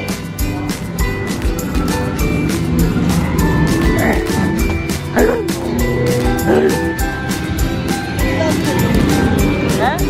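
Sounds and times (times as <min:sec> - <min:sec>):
film soundtrack music with beat: 0:00.0 - 0:10.0
rising swoop: 0:00.8 - 0:09.8.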